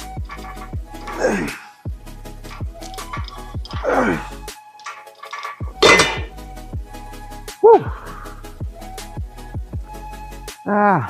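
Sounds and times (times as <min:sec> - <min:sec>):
weight stack plates clanking: 0:00.0 - 0:01.6, 0:02.4 - 0:06.3
background music with steady beat: 0:00.0 - 0:11.0.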